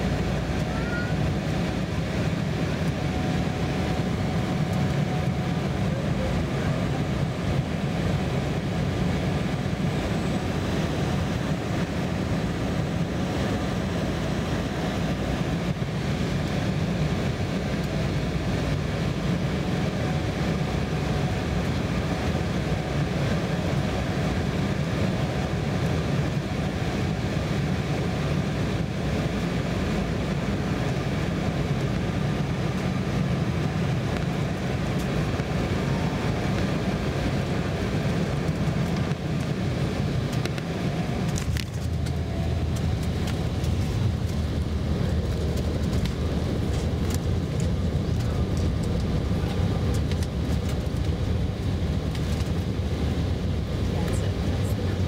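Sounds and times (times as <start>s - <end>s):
jet engines roaring in cabin: 0.0s - 55.0s.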